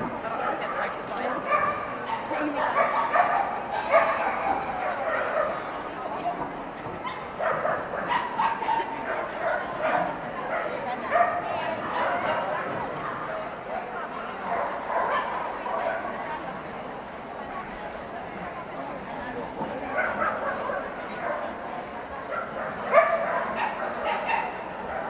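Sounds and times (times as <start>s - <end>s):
crowd babble: 0.0s - 25.0s.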